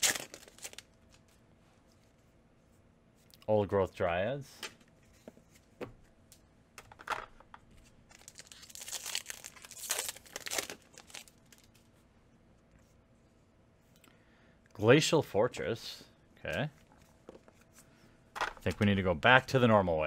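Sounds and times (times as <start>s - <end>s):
foil wrapper crinkling: 0.0s - 0.9s, 8.1s - 11.8s.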